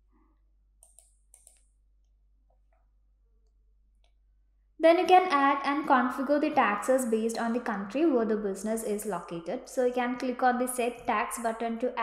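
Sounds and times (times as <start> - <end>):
faint computer mouse clicks: 0.8 - 1.7.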